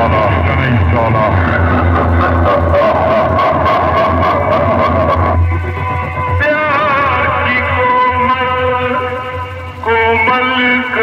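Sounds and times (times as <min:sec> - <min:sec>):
bass-heavy music through loudspeakers: 0:00.0 - 0:11.0.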